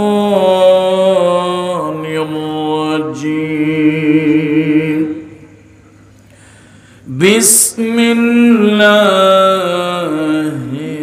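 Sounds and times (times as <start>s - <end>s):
man chanting melodic recitation: 0.0s - 5.6s, 7.1s - 11.0s.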